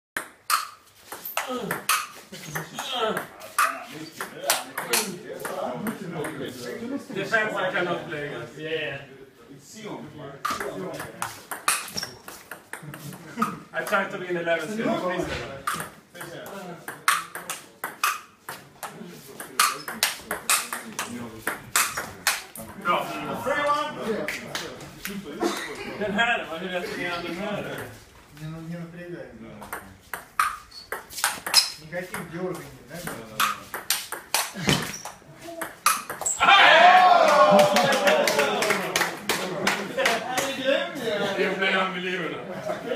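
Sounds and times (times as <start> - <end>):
table tennis ball clicking: 35.6 - 36.2.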